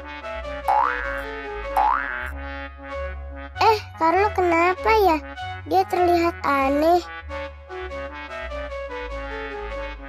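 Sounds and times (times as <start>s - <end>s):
plucked background music: 0.0s - 10.0s
cartoon boing sound effects: 0.7s - 1.2s, 1.8s - 2.3s.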